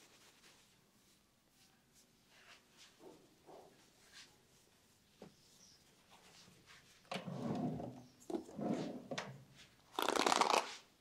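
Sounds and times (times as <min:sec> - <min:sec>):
objects scraping and rustling: 0:06.1 - 0:10.9.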